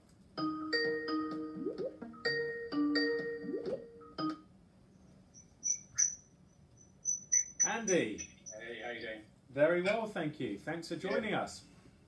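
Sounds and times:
chiming ringtone melody: 0:00.4 - 0:04.4
faint high chirps: 0:05.0 - 0:09.2.

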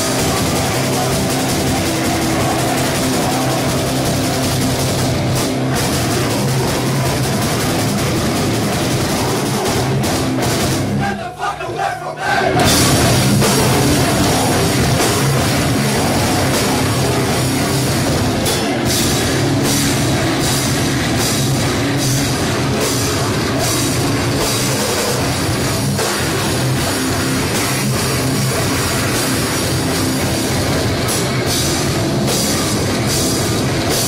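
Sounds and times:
metal band playing live: 0:00.0 - 0:34.0.

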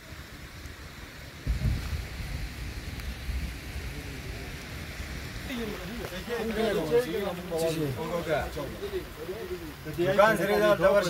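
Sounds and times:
wind buffeting microphone: 0:00.1 - 0:07.3.

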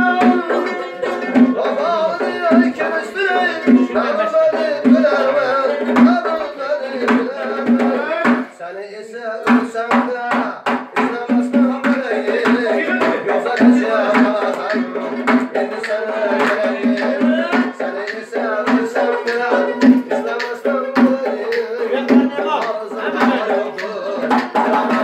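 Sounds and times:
plucked lute: 0:00.0 - 0:06.3
frame drum beating: 0:00.0 - 0:08.5, 0:09.5 - 0:25.0
person singing: 0:00.0 - 0:25.0.

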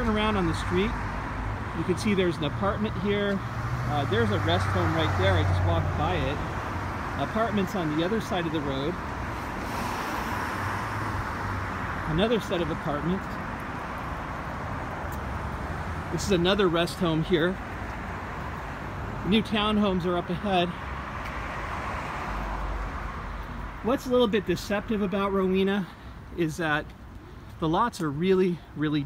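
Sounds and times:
low traffic rumble: 0:00.0 - 0:29.0
car driving past: 0:09.2 - 0:12.1.

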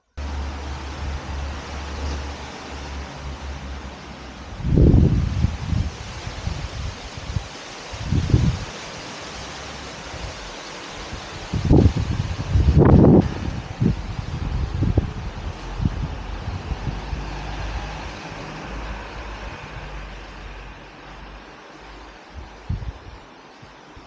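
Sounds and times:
wind buffeting microphone: 0:00.2 - 0:24.0.

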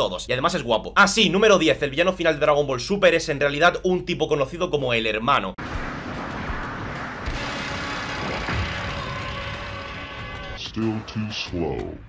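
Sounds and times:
dense rush of fight noise: 0:05.6 - 0:10.6
faint musical score: 0:05.6 - 0:12.0.

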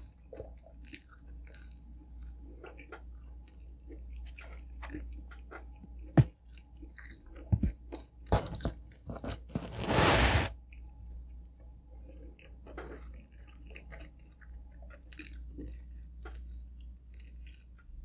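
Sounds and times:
chewing with wet mouth clicks: 0:00.0 - 0:08.2, 0:10.7 - 0:18.0
pizza crust tearing on cardboard: 0:08.4 - 0:10.5.

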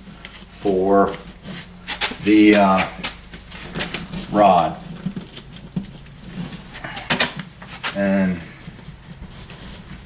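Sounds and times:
insulation rustling: 0:00.0 - 0:10.0.

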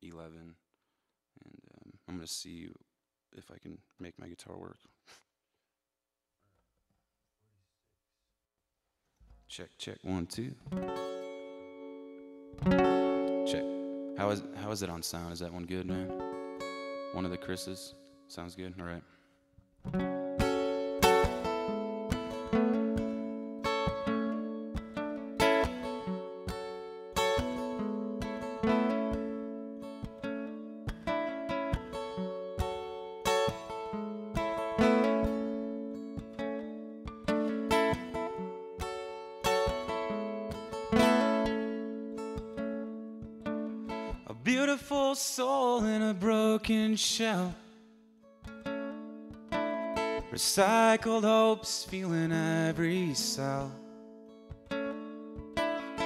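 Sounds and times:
acoustic guitar picking: 0:10.6 - 0:18.5, 0:19.8 - 0:56.0
person singing: 0:44.2 - 0:47.7, 0:50.3 - 0:53.8.

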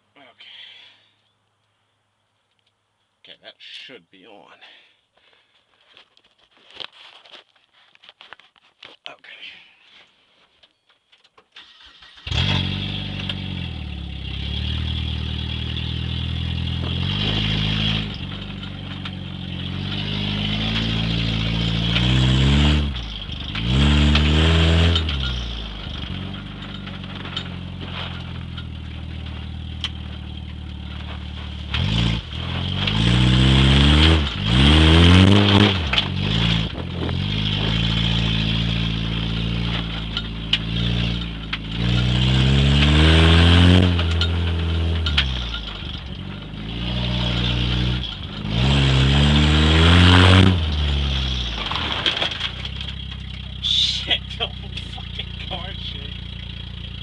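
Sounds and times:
car engine starting and revving: 0:11.6 - 0:57.0.

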